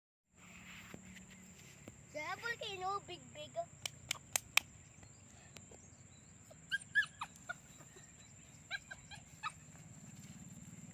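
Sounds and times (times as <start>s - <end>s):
puppy yipping and whimpering: 6.4s - 7.9s, 8.6s - 9.9s.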